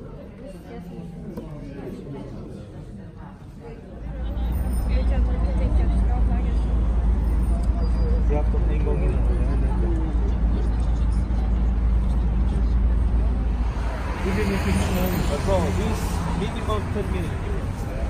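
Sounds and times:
faint voices of passers-by: 0.0 - 18.0
street noise rumble: 3.8 - 18.0.

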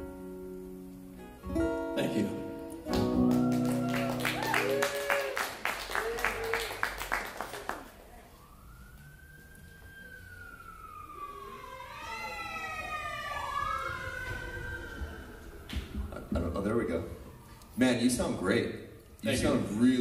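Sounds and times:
acoustic guitar chord: 0.0 - 3.6
applause and cheer: 2.9 - 8.1
siren wailing: 3.3 - 15.9.

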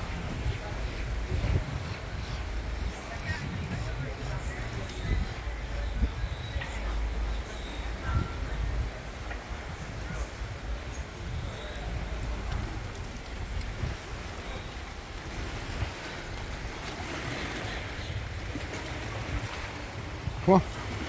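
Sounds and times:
choppy water lapping on rocks: 0.0 - 21.0
wind buffeting microphone: 0.0 - 21.0.

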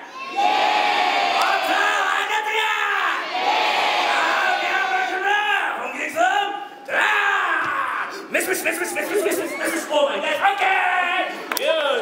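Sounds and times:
audience shouting and cheering: 0.0 - 5.8.

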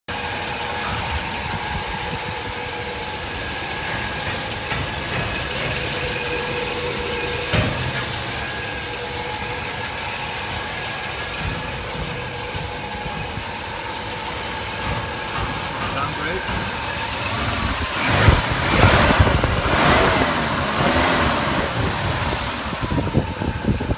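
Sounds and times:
car engine idling: 0.0 - 23.9
engine whine: 0.0 - 23.9.

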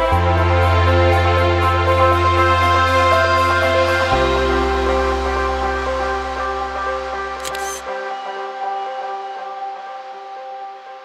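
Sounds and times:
soft sustained background music: 0.0 - 11.0
camera shutter click: 7.4 - 7.9.

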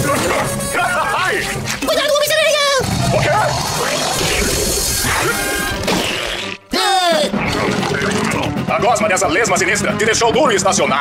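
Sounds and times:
cartoon music: 2.4 - 10.0.

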